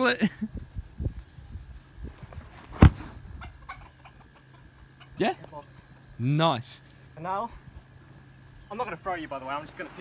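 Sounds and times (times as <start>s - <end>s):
dummy thudding onto grass: 2.1s - 3.2s.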